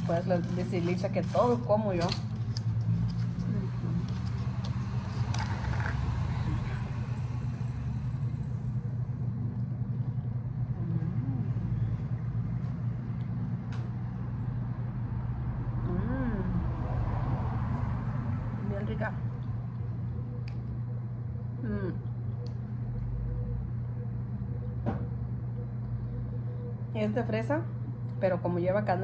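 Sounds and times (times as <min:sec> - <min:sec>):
low mechanical hum: 0:00.0 - 0:29.0.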